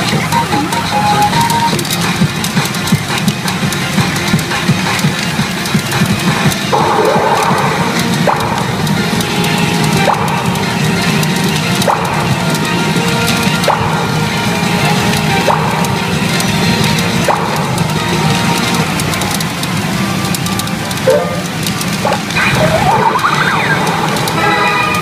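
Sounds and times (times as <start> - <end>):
pachinko machine game music: 0.0 - 25.0.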